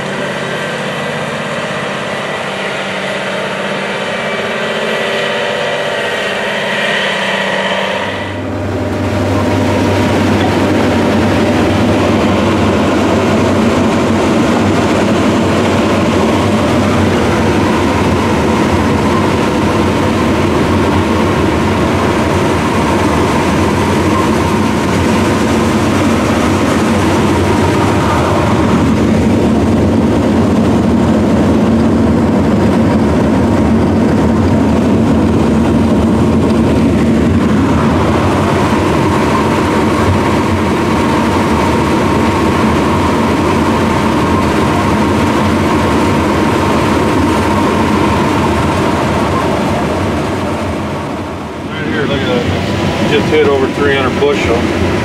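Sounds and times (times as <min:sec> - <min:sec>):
combine harvester drone: 0:00.0 - 0:55.0
deeper machine hum: 0:00.0 - 0:55.0
steady machine whine: 0:00.0 - 0:55.0.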